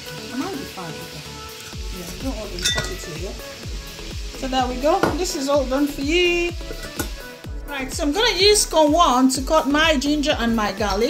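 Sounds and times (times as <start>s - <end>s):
background music: 0.0s - 11.0s
metal cone clinking against bowl: 2.6s - 3.1s.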